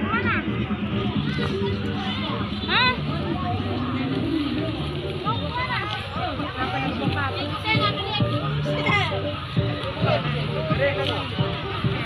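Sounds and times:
background music: 0:00.0 - 0:12.0
crowd chatter: 0:00.0 - 0:12.0.

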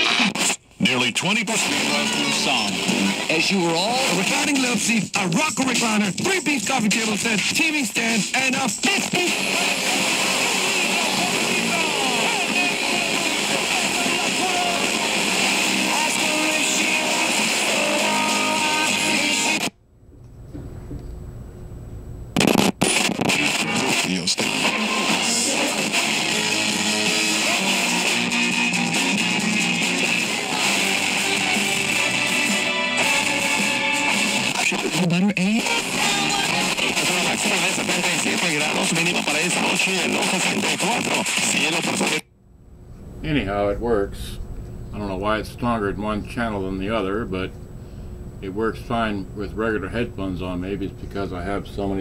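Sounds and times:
radio music with guitar and voices: 0:00.0 - 0:19.7, 0:22.4 - 0:42.3, 0:43.2 - 0:47.6, 0:48.4 - 0:52.0.

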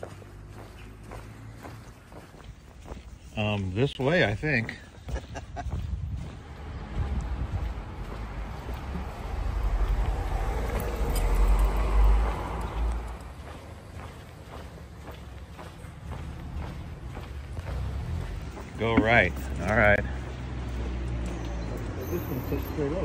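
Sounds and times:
car driving past: 0:06.3 - 0:23.0.

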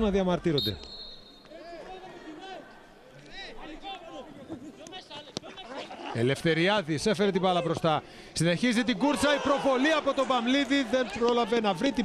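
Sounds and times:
football players shouting: 0:08.8 - 0:12.0.

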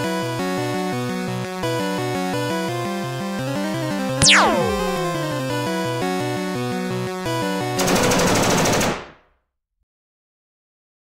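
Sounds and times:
upbeat game music: 0:04.2 - 0:05.7
automatic rifle fire: 0:07.8 - 0:09.2.

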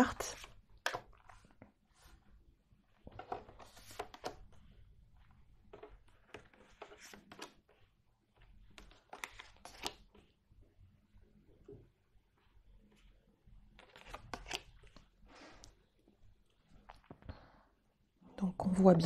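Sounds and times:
cards sliding and tapping on wood: 0:03.1 - 0:04.5, 0:05.6 - 0:07.8, 0:08.4 - 0:10.2.

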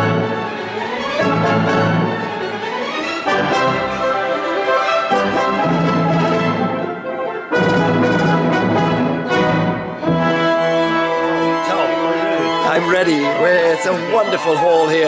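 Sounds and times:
orchestra playing with brass: 0:00.0 - 0:15.0.

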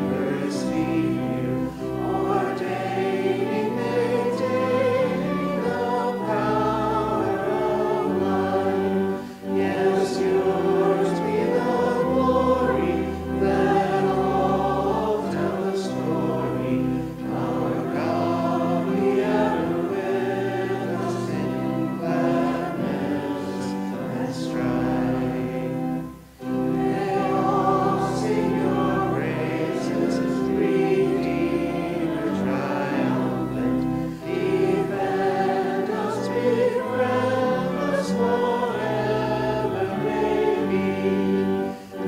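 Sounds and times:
pipe organ playing a hymn: 0:00.0 - 0:42.0
voices singing: 0:00.0 - 0:42.0.

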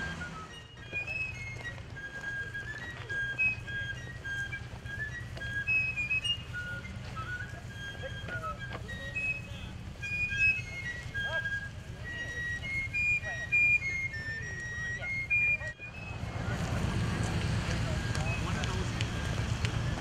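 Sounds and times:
fife playing march: 0:00.0 - 0:20.0.

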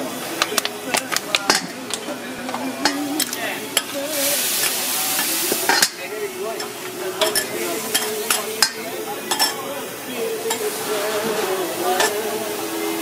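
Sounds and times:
water hissing on hot griddle: 0:02.8 - 0:13.0.

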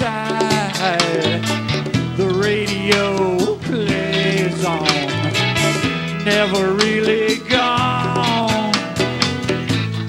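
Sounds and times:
live band playing guitars: 0:00.0 - 0:10.0.

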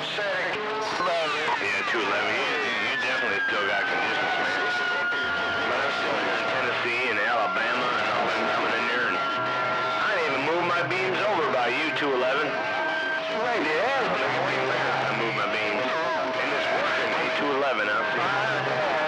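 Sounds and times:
garbled radio voices: 0:00.0 - 0:19.0
radio band noise: 0:00.0 - 0:19.0
radio whistle tones: 0:00.8 - 0:19.0.

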